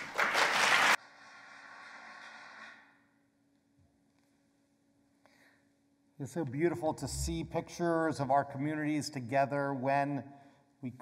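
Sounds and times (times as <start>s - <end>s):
audience applause: 0.0s - 1.0s.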